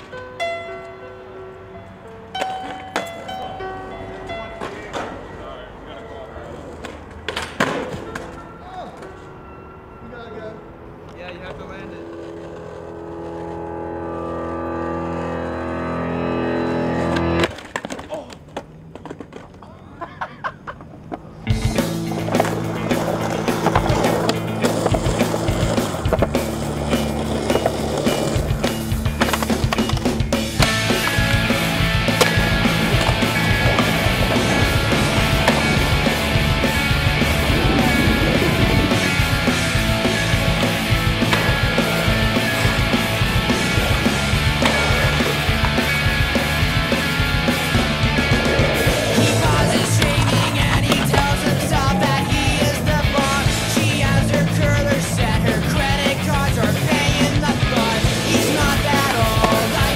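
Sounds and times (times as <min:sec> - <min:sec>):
skateboard on pavement: 0:06.0 - 0:09.3, 0:11.3 - 0:59.9.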